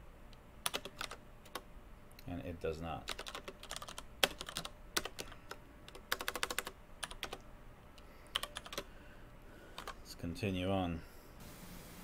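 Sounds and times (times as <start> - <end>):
typing on computer keyboard: 0.6 - 1.6, 3.1 - 7.4, 8.3 - 8.9, 9.8 - 10.0.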